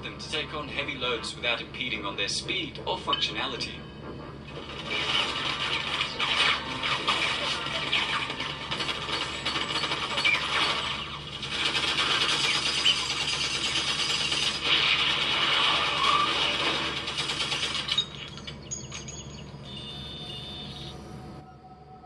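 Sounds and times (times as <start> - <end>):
blasts: 4.6 - 18.0
rapid gunfire: 4.6 - 18.2
electronic beeps and tones: 19.6 - 21.8.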